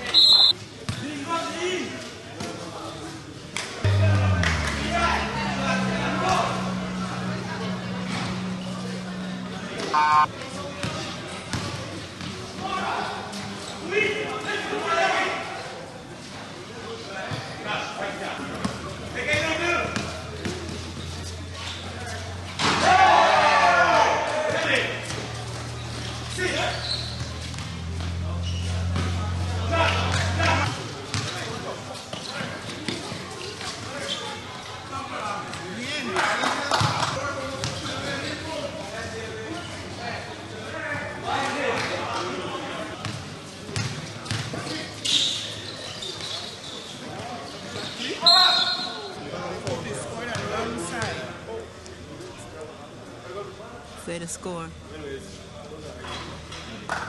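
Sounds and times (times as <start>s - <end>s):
players shouting: 3.9s - 10.3s, 22.7s - 25.0s
steady low hum: 3.9s - 10.3s
basketball bouncing on hard court: 43.8s - 44.5s.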